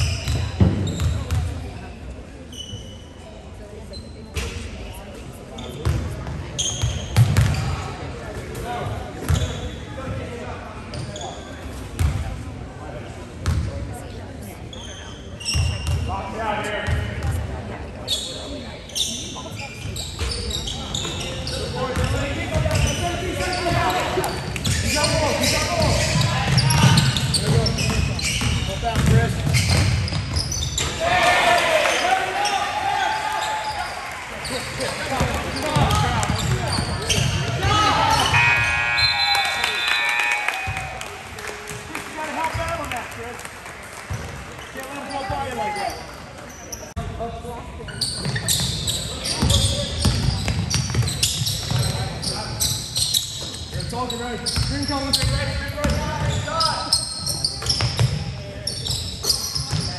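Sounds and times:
people shouting and talking: 0:00.0 - 0:59.9
basketball bouncing on wooden floor: 0:26.6 - 0:30.2.

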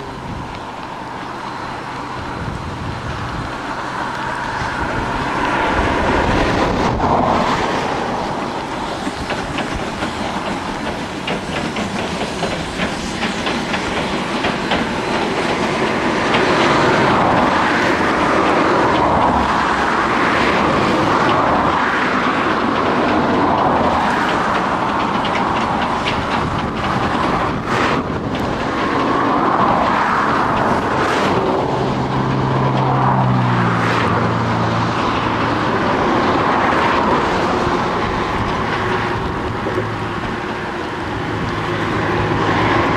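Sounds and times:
train wheels clickety-clack: 0:00.0 - 0:42.9.

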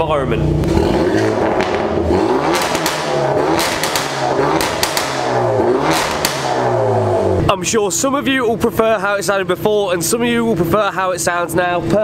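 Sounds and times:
exhaust cracks: 0:00.0 - 0:08.4
car engine revving: 0:00.2 - 0:07.6.

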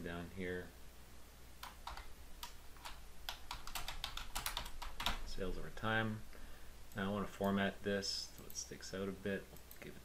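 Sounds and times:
computer keyboard typing: 0:01.6 - 0:05.2.

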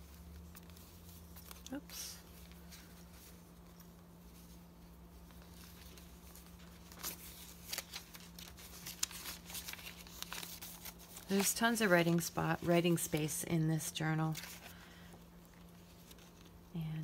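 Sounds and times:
paper rustling and crinkling: 0:00.0 - 0:16.7
faint steady hum: 0:00.0 - 0:17.0.

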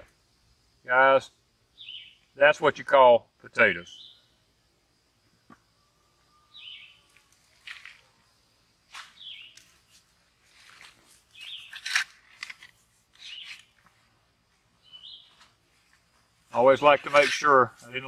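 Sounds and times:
bird chirping: 0:01.7 - 0:02.4, 0:03.8 - 0:04.5, 0:05.4 - 0:07.4, 0:09.2 - 0:09.8, 0:11.3 - 0:12.0, 0:13.2 - 0:13.8, 0:14.8 - 0:15.5.

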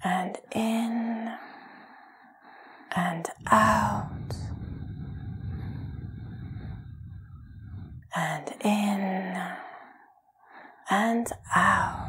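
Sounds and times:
woman giving breathing cues: 0:02.9 - 0:04.5.

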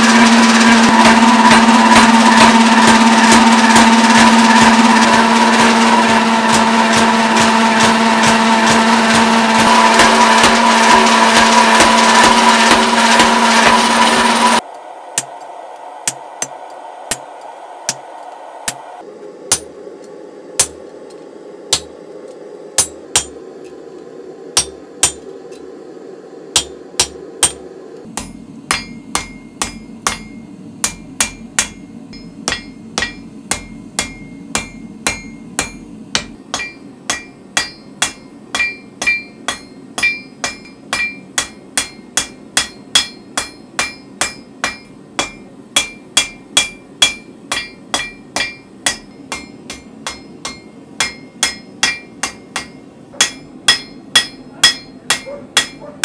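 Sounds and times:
hammer striking steel on anvil: 0:00.0 - 0:18.9, 0:19.5 - 0:19.8, 0:20.6 - 0:20.9, 0:21.7 - 0:22.0, 0:22.8 - 0:23.4, 0:24.6 - 0:25.6, 0:26.5 - 0:56.0.

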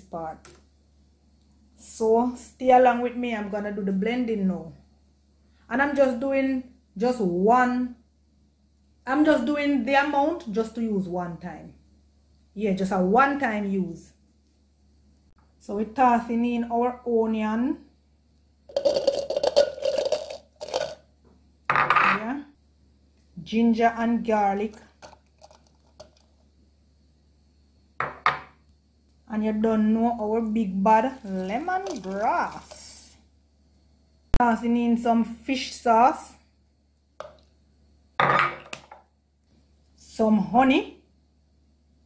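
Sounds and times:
onion pieces clattering into plastic cup: 0:18.7 - 0:21.0, 0:24.7 - 0:26.4, 0:31.1 - 0:33.0, 0:37.2 - 0:37.4
plastic bottle handling noise: 0:18.7 - 0:21.0, 0:24.8 - 0:26.4, 0:31.1 - 0:33.0.

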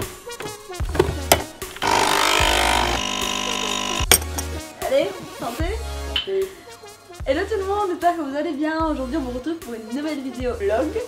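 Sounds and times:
coffee machine pump buzzing: 0:01.7 - 0:04.1.

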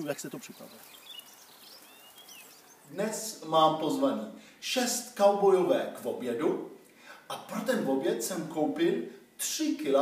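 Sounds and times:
faint bird chirps: 0:00.0 - 0:03.0
outdoor background noise: 0:00.0 - 0:10.0.

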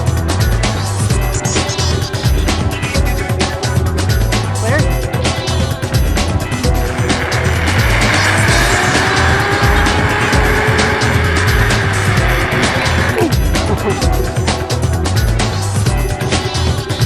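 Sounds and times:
background music with beat: 0:00.0 - 0:17.0
zipline pulleys whining on cable: 0:06.4 - 0:14.1.

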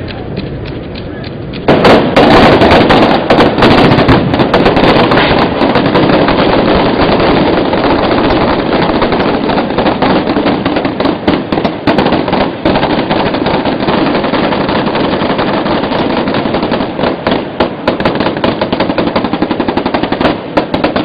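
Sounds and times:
rapid firework bangs and pops: 0:01.5 - 0:21.0.

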